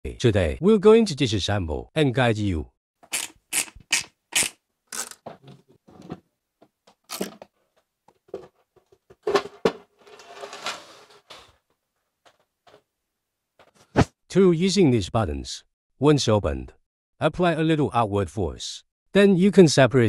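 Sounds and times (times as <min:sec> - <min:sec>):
scraping rustle of cover: 0:10.0 - 0:11.5.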